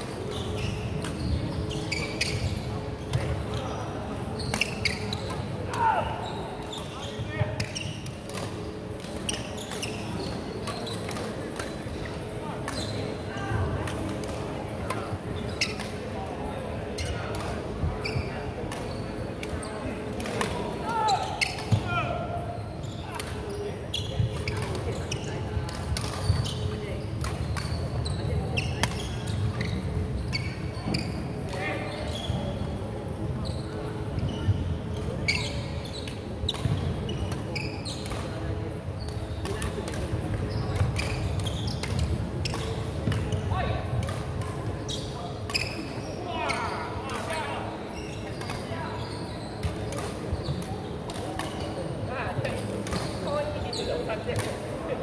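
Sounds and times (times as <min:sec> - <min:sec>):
shoe squeaks: 0:00.2 - 0:08.1, 0:09.2 - 0:13.2, 0:15.4 - 0:15.9, 0:17.9 - 0:20.0, 0:20.9 - 0:25.5, 0:26.2 - 0:32.6, 0:33.4 - 0:34.6, 0:35.2 - 0:38.2, 0:40.5 - 0:43.7, 0:44.8 - 0:52.2, 0:52.9 - 0:54.2
rackets hitting shuttlecock: 0:25.7 - 0:26.4, 0:27.2 - 0:27.8, 0:39.4 - 0:43.3, 0:43.9 - 0:44.6, 0:49.6 - 0:51.8, 0:54.3 - 0:54.6.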